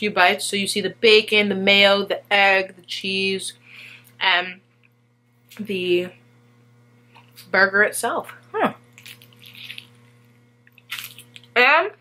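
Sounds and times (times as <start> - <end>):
lettuce crunch: 8.9 - 11.6
wet chewing sounds: 8.9 - 11.6.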